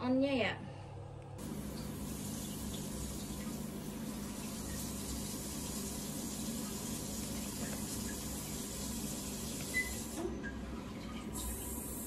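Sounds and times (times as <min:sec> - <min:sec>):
spraying water hiss: 0:01.4 - 0:10.2.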